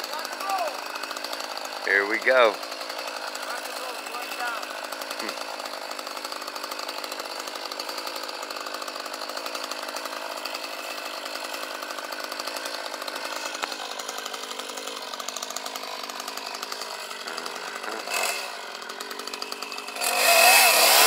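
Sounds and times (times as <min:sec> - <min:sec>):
chainsaw engine running: 0:00.0 - 0:21.0.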